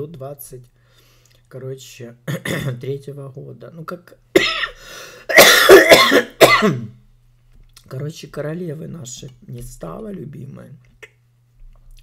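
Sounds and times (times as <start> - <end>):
person coughing: 2.3 - 2.8, 4.4 - 7.0.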